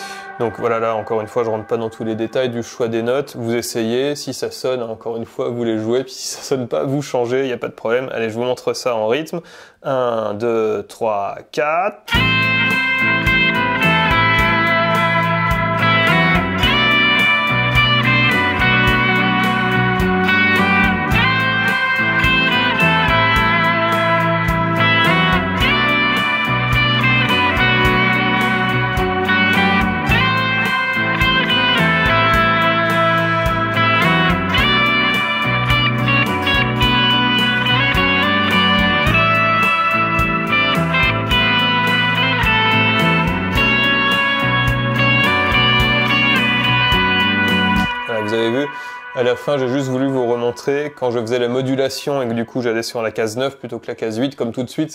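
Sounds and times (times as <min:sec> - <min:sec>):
electric guitar lead: 0:00.0 - 0:04.0, 0:12.1 - 0:52.5
looped guitar arpeggios: 0:00.0 - 0:04.0, 0:12.1 - 0:52.7
bass line: 0:12.1 - 0:50.6.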